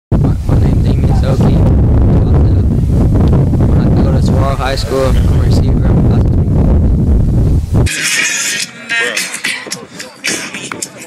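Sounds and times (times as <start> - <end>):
wind buffeting microphone: 0.1 - 7.9
faint voices: 7.9 - 11.0.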